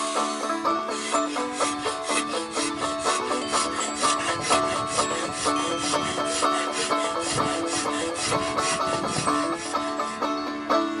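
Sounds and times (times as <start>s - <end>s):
banjo music: 0.0s - 11.0s
knife shaving and scraping wood: 0.7s - 10.2s.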